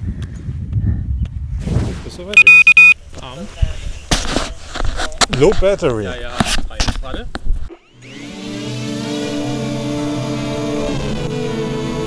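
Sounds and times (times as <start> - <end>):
electronic buzzer beeps: 2.4 - 3.0.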